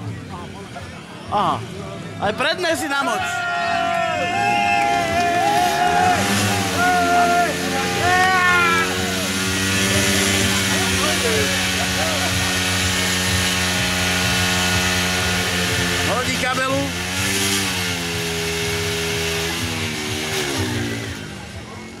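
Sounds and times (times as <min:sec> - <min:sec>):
voices: 0:00.0 - 0:17.1, 0:19.9 - 0:22.0
moped engine idling: 0:05.8 - 0:17.1.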